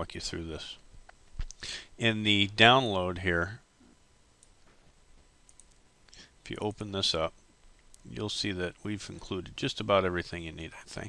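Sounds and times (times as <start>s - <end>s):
computer mouse clicks: 5.5s - 5.8s.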